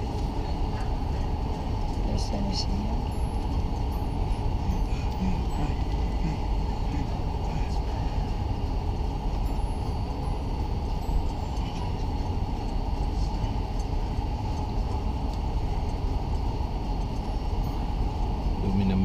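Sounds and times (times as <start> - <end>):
car engine and tyres from cabin: 0.0 - 19.0.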